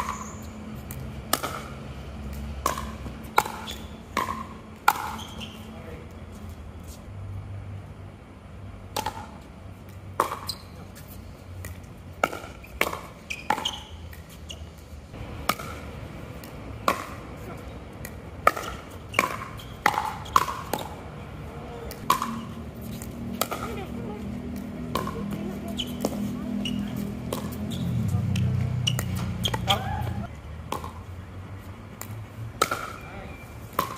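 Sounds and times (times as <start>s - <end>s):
paddles hitting plastic ball: 18.0s - 21.0s, 21.9s - 23.8s.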